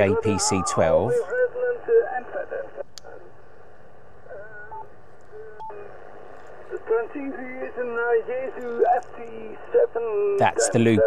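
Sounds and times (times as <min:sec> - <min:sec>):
radio voice signal: 0:00.0 - 0:03.4, 0:04.3 - 0:11.0
radio band noise: 0:00.0 - 0:11.0.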